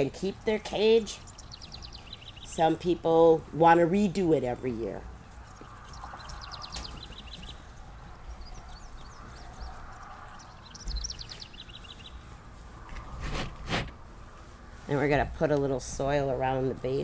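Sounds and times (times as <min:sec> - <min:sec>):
rustling foliage: 0:00.0 - 0:17.0.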